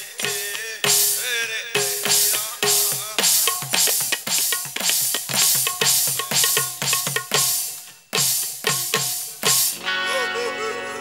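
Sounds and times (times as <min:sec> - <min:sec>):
drum kit hits: 0:00.0 - 0:09.8
live band playing instrumental: 0:03.8 - 0:11.0.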